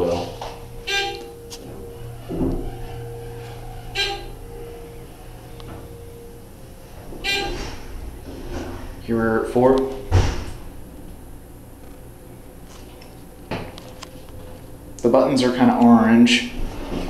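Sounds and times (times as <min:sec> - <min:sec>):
elevator bell dings: 0:00.0 - 0:17.0
elevator pump humming and whining: 0:00.0 - 0:17.0.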